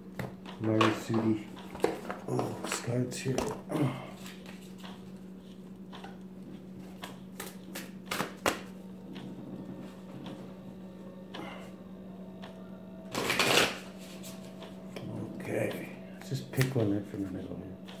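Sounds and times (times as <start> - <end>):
steady low hum: 0.0 - 18.0
cards being shuffled: 6.8 - 8.8, 13.1 - 14.6.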